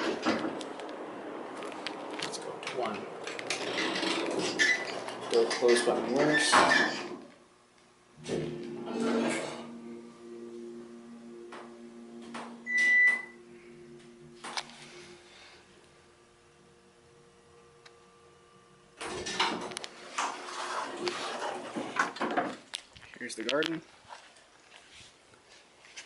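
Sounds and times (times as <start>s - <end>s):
elevator hum: 0.0s - 22.1s
elevator doors sliding open: 3.2s - 7.3s, 8.2s - 10.0s, 19.0s - 22.4s
short high-pitched beep: 12.6s - 13.4s.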